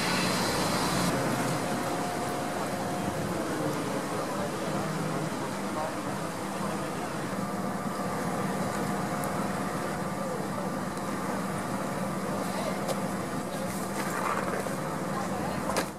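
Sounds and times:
faint voices: 0:02.1 - 0:11.6.

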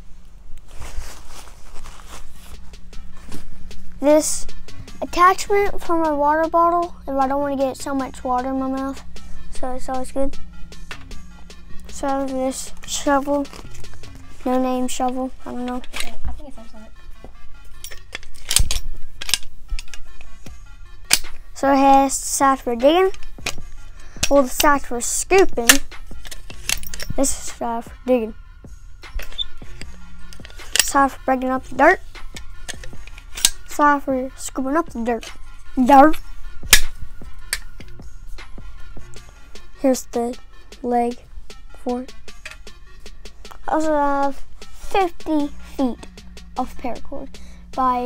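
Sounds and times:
quiet background music: 0:00.0 - 0:48.0
folding shovel metal clicks: 0:15.6 - 0:16.1, 0:17.8 - 0:20.3, 0:21.1 - 0:21.4, 0:25.6 - 0:27.2, 0:29.1 - 0:31.1, 0:32.4 - 0:33.8, 0:36.0 - 0:38.0.

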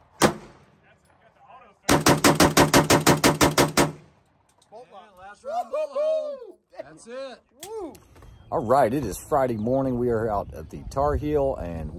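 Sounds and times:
rapid shotgun shots: 0:00.0 - 0:00.7, 0:01.9 - 0:04.1.

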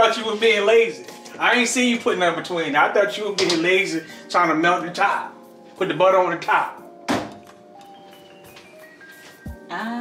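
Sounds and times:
soft background music: 0:00.0 - 0:10.0
short thunk: 0:07.1 - 0:07.4.

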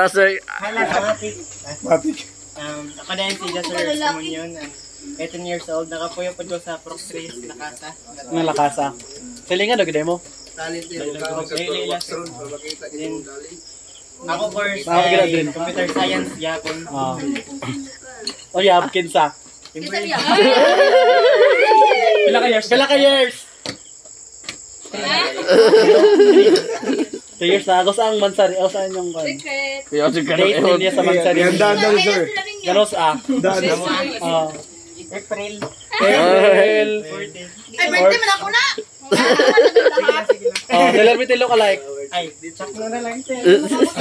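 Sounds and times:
people talking: 0:00.0 - 0:13.6, 0:14.2 - 0:23.4, 0:24.9 - 0:44.0
crickets droning: 0:00.0 - 0:44.0
insects chirring: 0:00.0 - 0:44.0.

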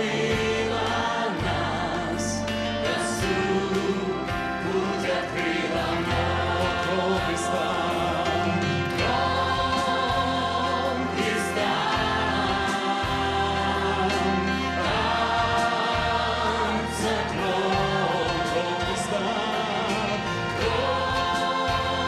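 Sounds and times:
amplified instrumental accompaniment: 0:00.0 - 0:22.0
choir singing: 0:00.0 - 0:22.0
male lead singer: 0:00.0 - 0:22.0
women's backing vocals: 0:00.0 - 0:22.0.

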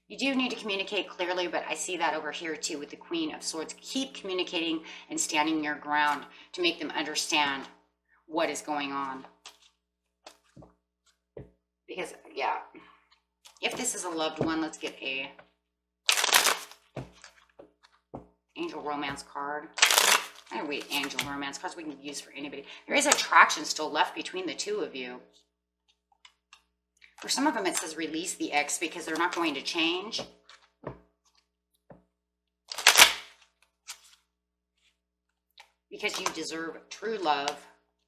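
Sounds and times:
cards being shuffled: 0:09.3 - 0:11.2, 0:16.1 - 0:18.3, 0:19.8 - 0:21.3, 0:32.7 - 0:35.0.

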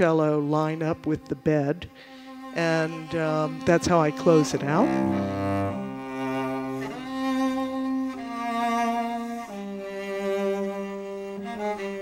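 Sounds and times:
cello bowed notes: 0:00.0 - 0:12.0.

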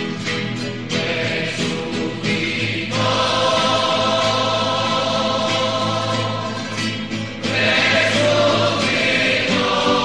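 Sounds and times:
choir singing a hymn: 0:00.9 - 0:10.0.

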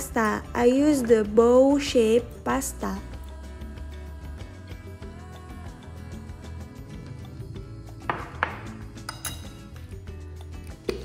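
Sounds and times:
background music: 0:00.0 - 0:11.0
fork clinking on plate: 0:09.0 - 0:09.8.

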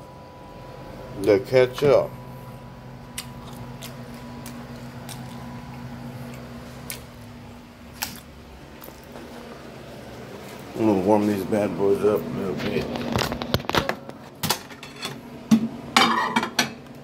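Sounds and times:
low hum: 0:00.0 - 0:14.3.

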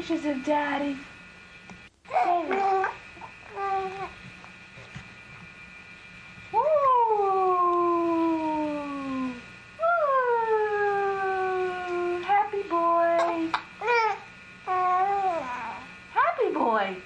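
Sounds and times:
baby cooing: 0:02.1 - 0:04.2, 0:13.2 - 0:16.0.

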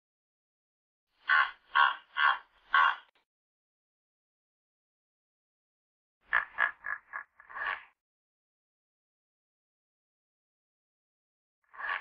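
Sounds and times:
hippopotamus honking: 0:01.3 - 0:03.1.

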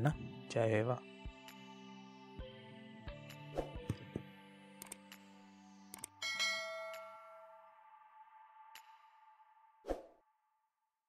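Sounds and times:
background music: 0:00.0 - 0:10.4
bright bell-like chime: 0:06.2 - 0:07.8.

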